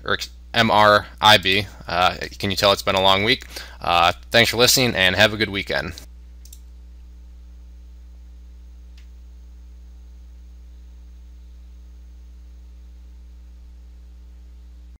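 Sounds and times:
electrical mains hum: 0.0s - 15.0s
faint click: 6.0s - 6.7s, 8.9s - 9.2s.

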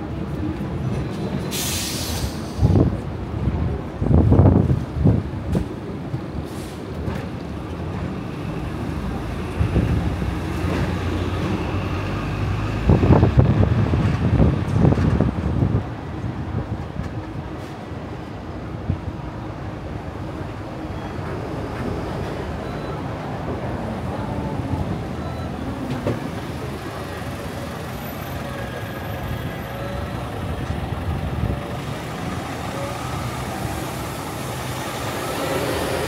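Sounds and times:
tram rumbling and rattling: 0.0s - 36.0s
wind on microphone: 12.6s - 17.5s.

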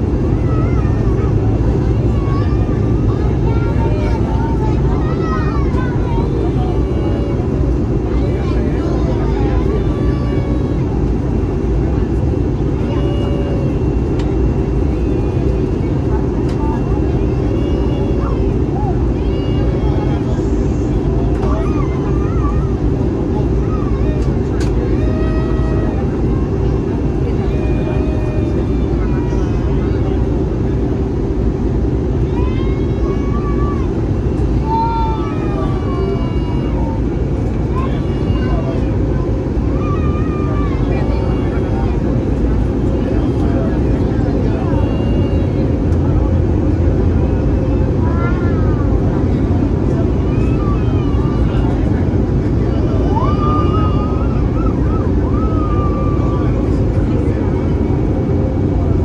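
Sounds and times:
airliner cabin engine roar: 0.0s - 59.0s
faint passenger voices murmuring: 0.0s - 59.0s.

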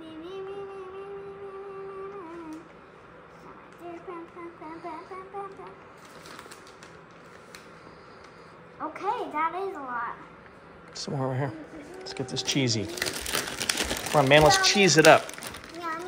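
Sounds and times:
child humming: 0.0s - 2.7s, 11.4s - 13.5s.

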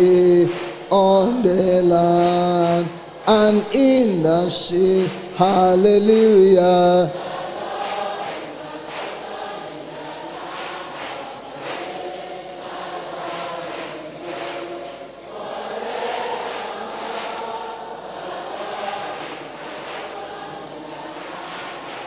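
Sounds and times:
congregation singing: 0.0s - 22.0s.

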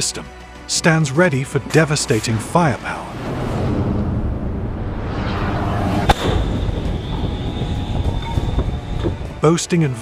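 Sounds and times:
rocket motor roaring: 3.0s - 9.1s
sharp bang: 4.6s - 7.6s.

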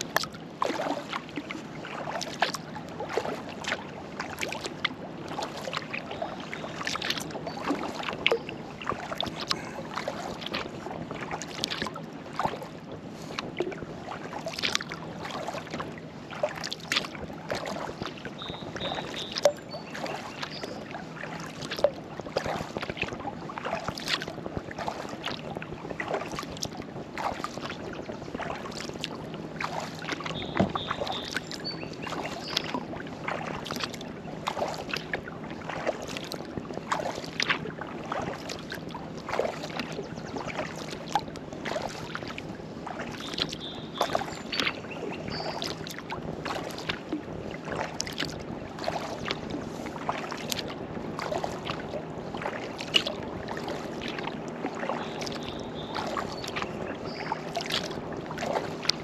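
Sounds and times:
paddle splashing in water: 0.0s - 59.0s
water lapping against hull: 0.0s - 59.0s.

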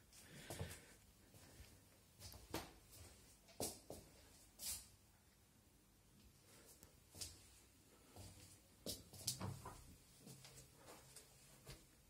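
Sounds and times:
soft footsteps: 0.3s - 4.9s, 6.3s - 12.0s.

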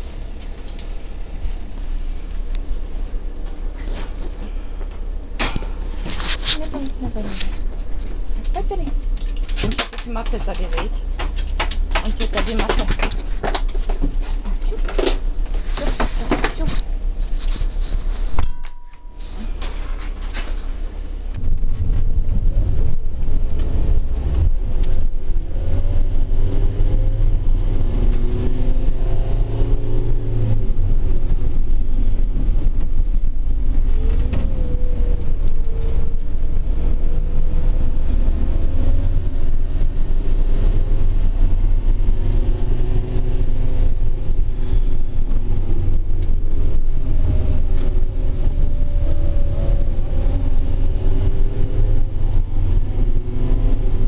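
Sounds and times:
road noise: 0.0s - 54.0s
vehicle engine rumble: 0.0s - 54.0s.

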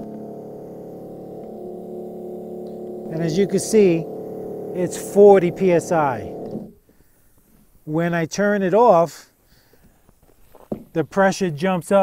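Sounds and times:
foam generator machine hum: 0.0s - 6.8s.

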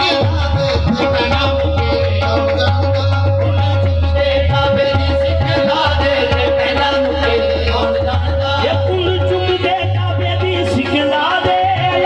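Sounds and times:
devotional music over loudspeakers: 0.0s - 12.0s.

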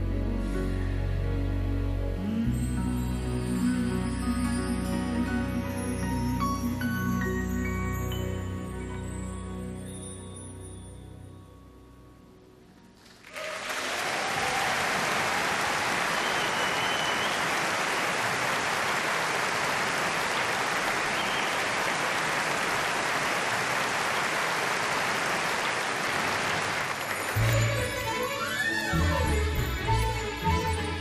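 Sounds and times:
audience applauding: 13.0s - 28.9s.

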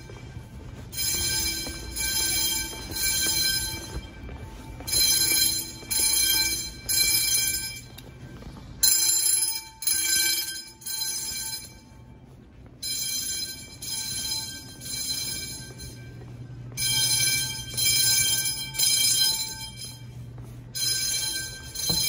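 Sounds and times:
fire alarm bells ringing: 0.0s - 22.0s.

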